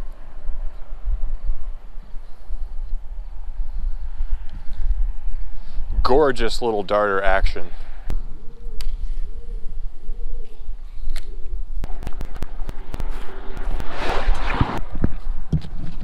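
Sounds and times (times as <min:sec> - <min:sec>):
steady outdoor rumble: 0:00.0 - 0:16.0
bird cooing: 0:08.2 - 0:11.8
vehicle passing: 0:11.8 - 0:16.0.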